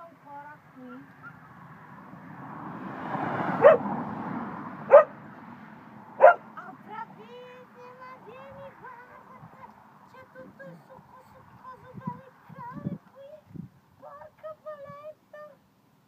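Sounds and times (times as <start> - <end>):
dog barking: 3.6 - 3.9, 4.9 - 5.2, 6.2 - 6.5.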